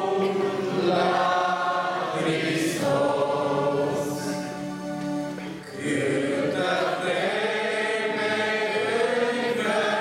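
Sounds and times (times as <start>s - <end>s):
congregation singing a hymn: 0.0s - 10.0s.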